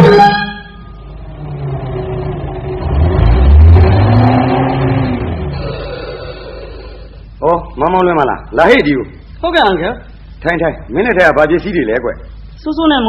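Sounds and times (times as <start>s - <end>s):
car engine driving past: 1.2s - 7.1s.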